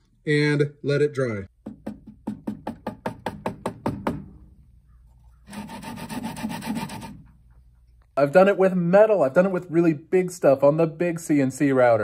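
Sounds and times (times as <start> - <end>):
wooden block scraping on tape: 5.5 - 7.4.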